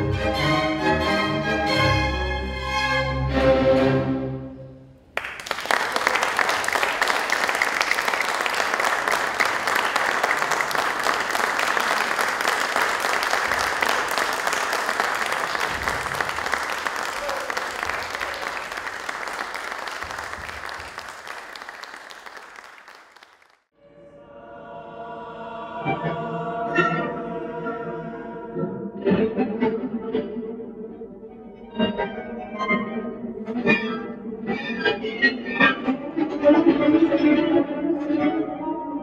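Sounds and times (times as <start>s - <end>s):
string music: 0.0s - 5.0s
audience applauding: 5.1s - 23.7s.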